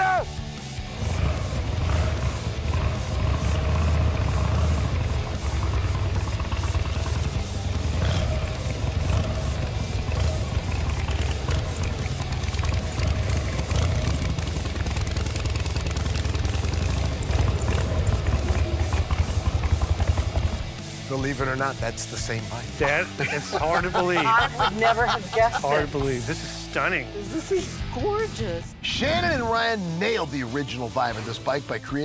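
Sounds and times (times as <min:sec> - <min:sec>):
motorcycle engine running: 0:00.0 - 0:30.9.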